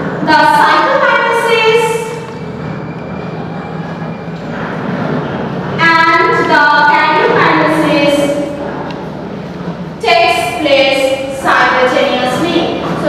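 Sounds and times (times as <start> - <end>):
room noise: 0.0 - 13.0.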